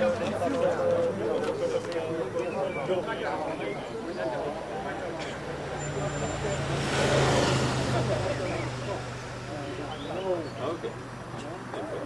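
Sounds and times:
car engine passing by: 0:05.4 - 0:10.9.

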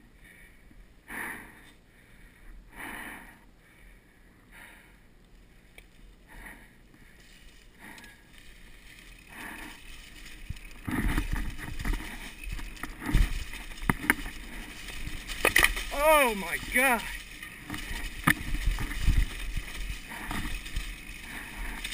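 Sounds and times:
bike clattering over rocks: 0:08.3 - 0:21.9.

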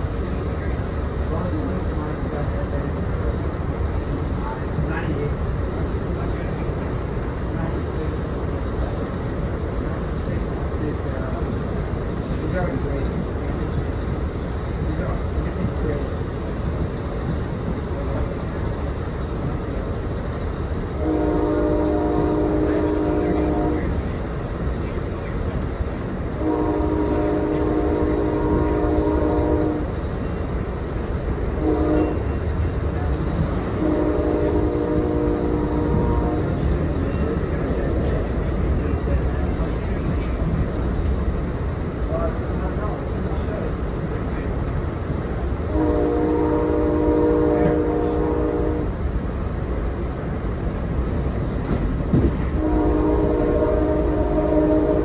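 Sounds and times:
train running rumble: 0:00.0 - 0:55.0
locomotive air horn blasts: 0:21.0 - 0:23.9, 0:26.4 - 0:29.9, 0:31.6 - 0:32.2, 0:33.8 - 0:36.6, 0:45.7 - 0:48.9, 0:52.6 - 0:55.0.

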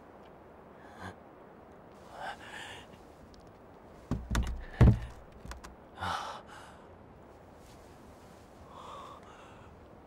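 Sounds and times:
light knocks: 0:04.1 - 0:05.7.

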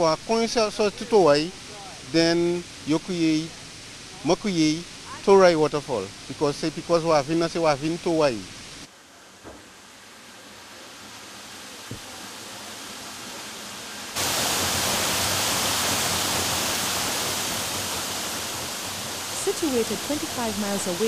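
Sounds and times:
waterfall splashing rush: 0:00.0 - 0:08.9, 0:10.8 - 0:21.0.

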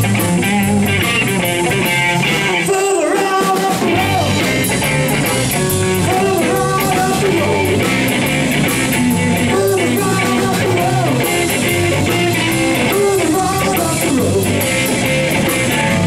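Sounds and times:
electric guitar bending notes: 0:00.0 - 0:02.8, 0:03.8 - 0:16.0
electric bass: 0:00.0 - 0:02.9, 0:03.7 - 0:16.0
drum kit and cymbals: 0:00.0 - 0:16.0.

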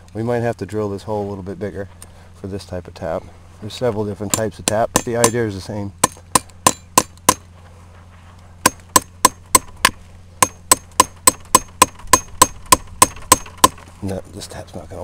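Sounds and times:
hammer tapping metal spout: 0:04.3 - 0:07.4.

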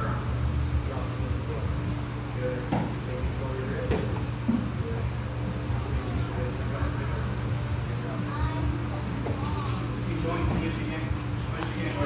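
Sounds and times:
quiet indistinct talking: 0:00.0 - 0:12.0
steady low hum: 0:00.0 - 0:12.0.

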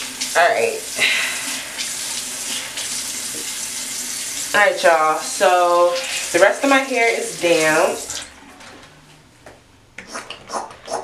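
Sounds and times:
water running from a tap: 0:00.0 - 0:08.3.

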